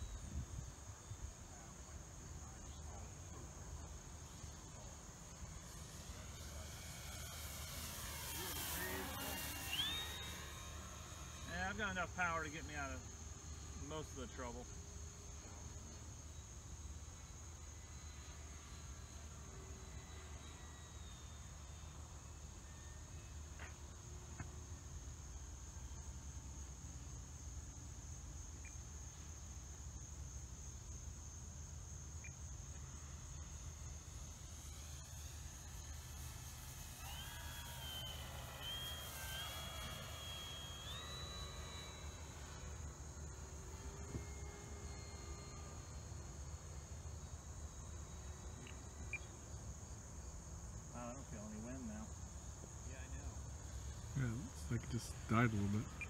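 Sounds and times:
electric motor whine overhead: 0:00.0 - 0:56.0
insect trilling: 0:03.5 - 0:23.3, 0:27.3 - 0:56.0.

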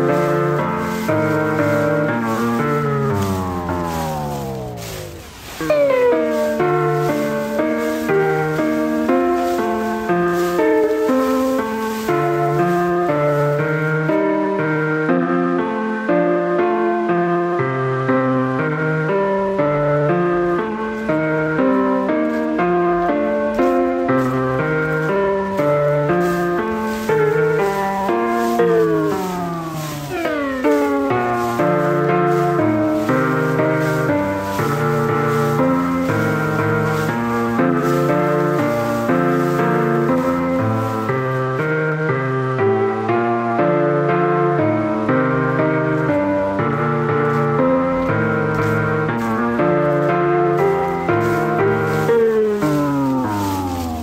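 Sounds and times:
solo piano piece: 0:00.0 - 0:54.0.

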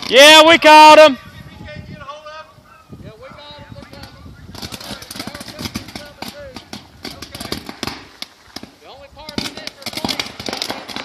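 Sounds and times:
electrical fire crackling and popping: 0:00.0 - 0:01.0, 0:03.7 - 0:11.0.

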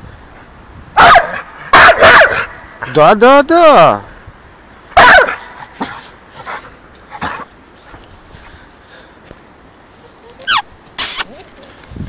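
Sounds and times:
dog barking loudly: 0:01.0 - 0:02.7, 0:05.0 - 0:05.6.

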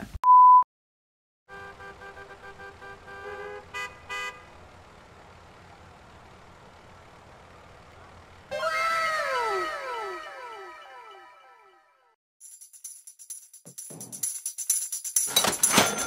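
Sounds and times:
car horns: 0:01.5 - 0:04.8
low steady traffic: 0:01.5 - 0:10.2.

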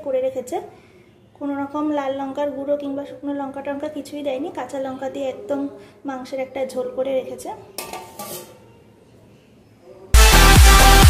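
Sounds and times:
metal plate clattering on bowl: 0:07.8 - 0:08.6.

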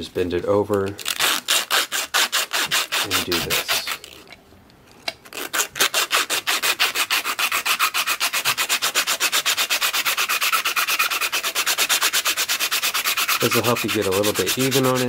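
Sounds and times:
sandpaper rubbing back and forth: 0:01.1 - 0:04.2, 0:05.3 - 0:15.0.

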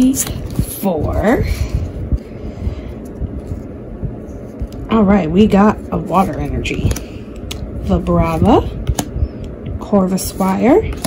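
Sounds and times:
trading cards being shuffled: 0:03.0 - 0:09.1.

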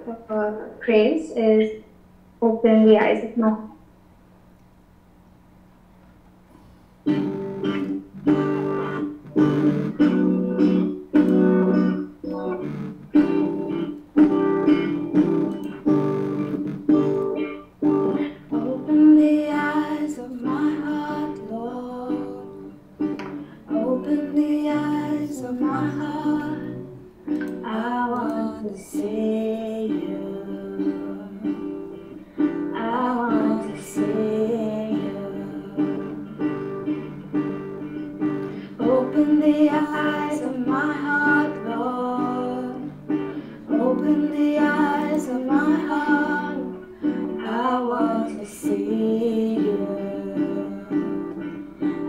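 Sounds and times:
acoustic guitar strumming: 0:07.0 - 0:52.0
person singing: 0:17.0 - 0:37.1, 0:38.3 - 0:52.0.

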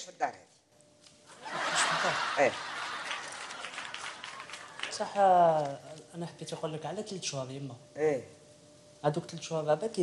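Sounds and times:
audience laughter: 0:01.3 - 0:04.8.

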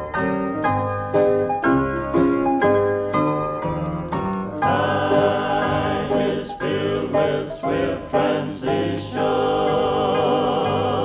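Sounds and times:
piano notes: 0:00.0 - 0:11.0
vocal group singing gospel: 0:04.6 - 0:11.0.

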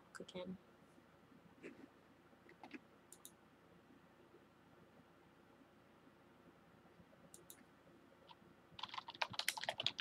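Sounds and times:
typing on computer keyboard: 0:08.8 - 0:10.0.

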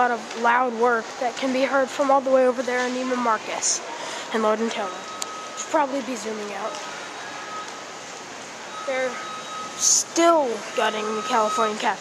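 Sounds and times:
indoor mall background hiss: 0:00.0 - 0:12.0.

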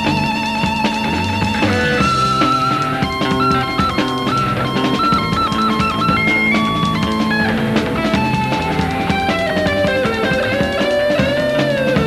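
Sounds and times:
drum kit beat: 0:00.0 - 0:12.0
electric bass: 0:00.0 - 0:12.0
electric guitar lead: 0:00.0 - 0:12.0.

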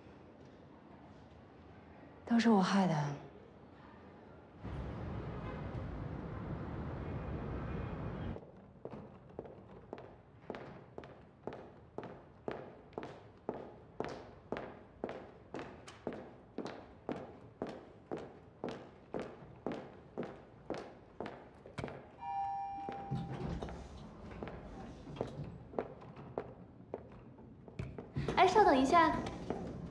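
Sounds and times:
city hum: 0:00.2 - 0:29.9
elevator chime: 0:22.2 - 0:24.0.

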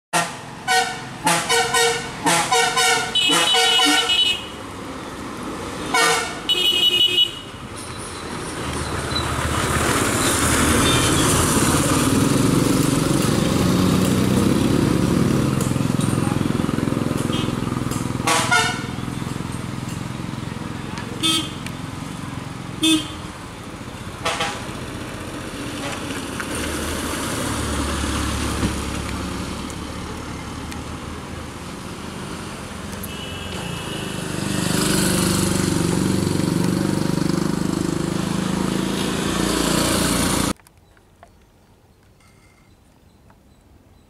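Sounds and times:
bus horn toots: 0:00.2 - 0:04.6, 0:05.8 - 0:07.6, 0:17.2 - 0:17.6, 0:18.2 - 0:19.2, 0:21.2 - 0:21.6, 0:22.8 - 0:23.3, 0:24.2 - 0:24.8, 0:33.0 - 0:34.3.

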